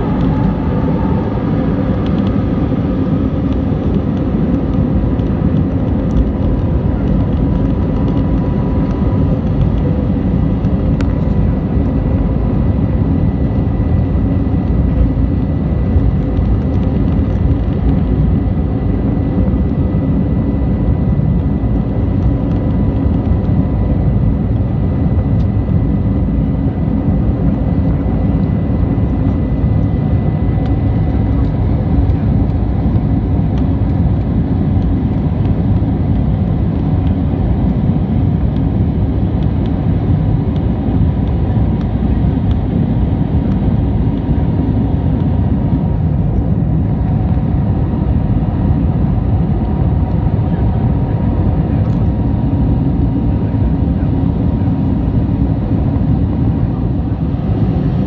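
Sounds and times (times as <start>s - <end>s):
high steady whine: 0.0s - 58.0s
jet engine cabin noise: 0.0s - 58.0s.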